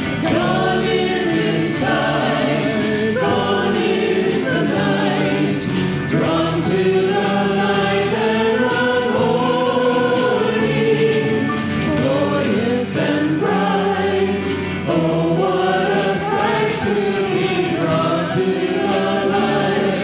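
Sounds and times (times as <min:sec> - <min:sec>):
congregation singing a hymn: 0:00.0 - 0:20.0
instrumental accompaniment: 0:00.0 - 0:20.0.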